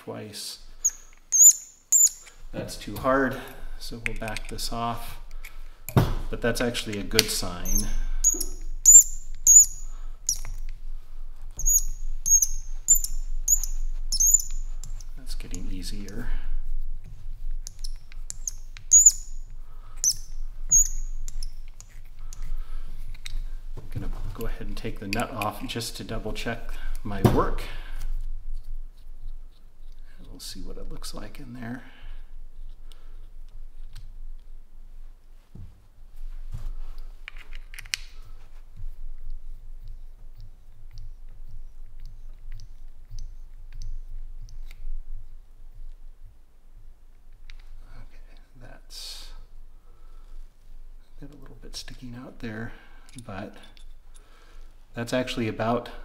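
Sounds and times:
valve stem squeaking: 0.8 - 2.4, 6.9 - 10.8, 11.5 - 16.8, 17.6 - 22.5, 39.5 - 44.8
small metal parts clicking: 6.9 - 10.8.

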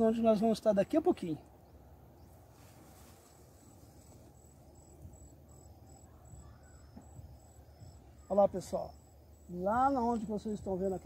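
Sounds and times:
insects chirping: 0.0 - 11.0
low outdoor hum: 0.0 - 11.0
lower insect chirping: 0.4 - 11.0.

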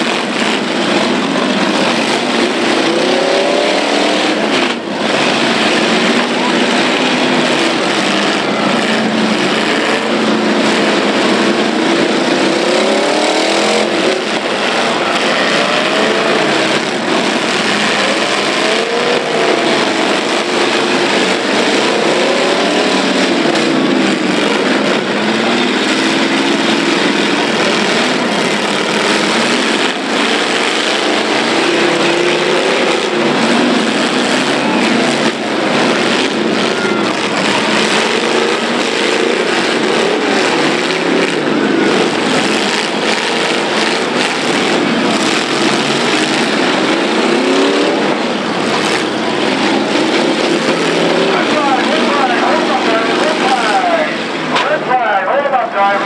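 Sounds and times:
car engines revving: 0.0 - 56.0.

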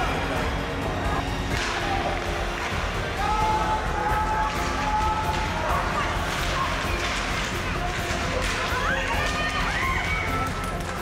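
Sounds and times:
music: 0.0 - 11.0
people shouting: 3.1 - 6.9
skate blades on ice: 4.4 - 11.0.

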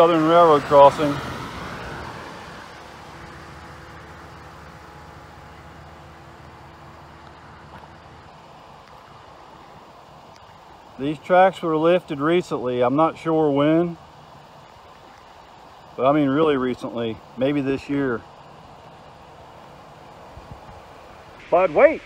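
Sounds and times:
car passing: 0.0 - 11.1
faint outdoor background: 0.0 - 22.0.

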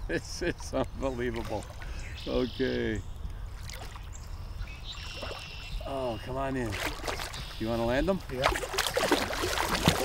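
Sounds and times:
low rumble of wind: 0.0 - 10.0
water sloshing and splashing: 3.5 - 4.3, 5.0 - 10.0.

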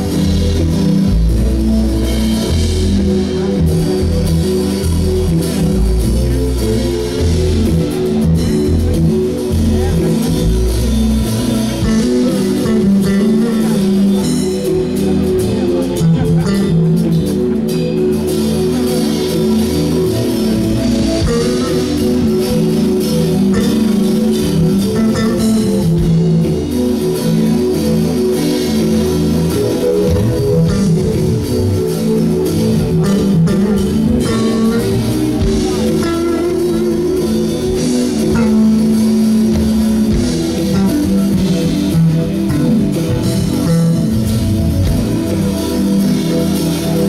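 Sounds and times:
electric bass guitar: 0.0 - 47.0
jazz-funk band playing: 0.0 - 47.0.

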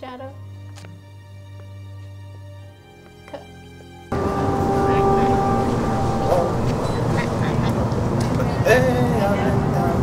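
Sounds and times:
steady pitched hum: 4.1 - 10.0.

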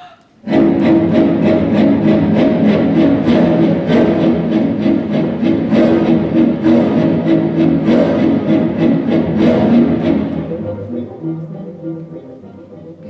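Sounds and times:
orchestral music with loud strings: 0.4 - 13.0.

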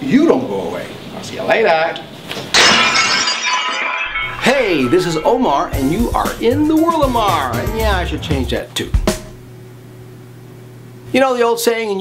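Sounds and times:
glass shattering: 2.5 - 6.3
tinkling glass shards: 2.6 - 5.7.

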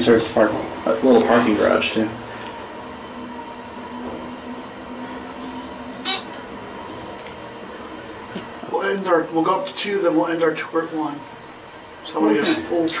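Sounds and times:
elevator hum: 0.0 - 13.0.

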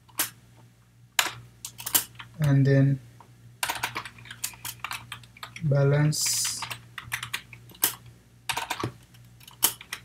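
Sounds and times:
typing on a computer keyboard: 3.6 - 5.6, 6.4 - 10.0.

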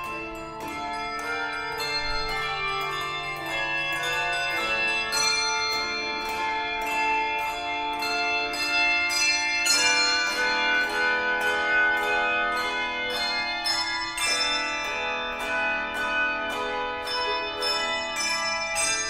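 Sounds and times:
handbell choir ringing chords: 0.0 - 19.0.

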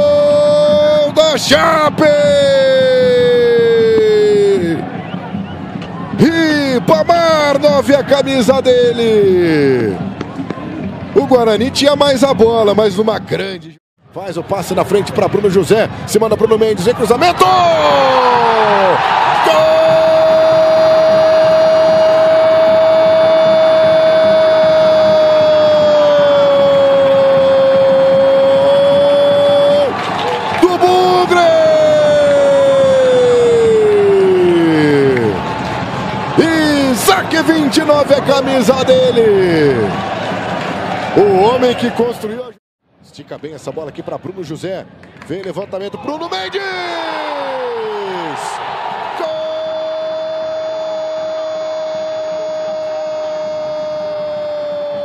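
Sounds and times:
commentator shouting goal: 0.0 - 4.8, 16.8 - 29.9, 30.6 - 35.4
stadium crowd noise: 0.0 - 55.0
commentator's long drawn-out shout: 46.6 - 55.0.

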